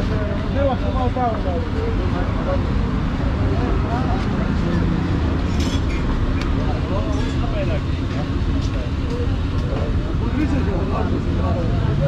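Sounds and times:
faint voices talking: 0.0s - 12.0s
street rumble: 0.0s - 12.0s.

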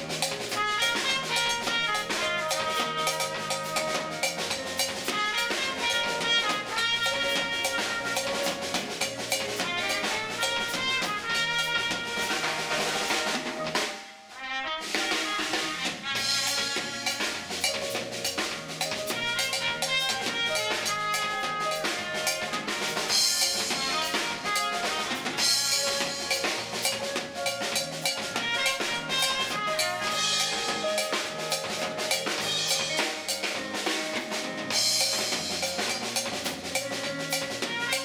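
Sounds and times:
electric bass: 0.0s - 13.8s, 15.8s - 38.0s
keyboard: 0.0s - 14.1s, 16.1s - 38.0s
trumpet holding notes: 0.0s - 17.8s, 18.4s - 33.9s, 34.7s - 38.0s
drum kit playing: 0.0s - 38.0s.

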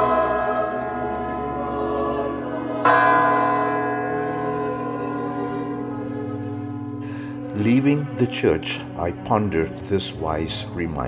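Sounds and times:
large church bells ringing: 0.0s - 11.0s.

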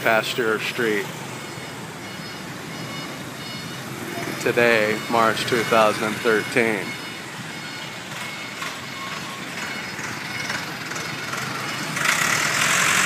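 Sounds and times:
passing cars and motorbikes: 0.0s - 13.0s
vehicle passing close by: 9.6s - 13.0s.

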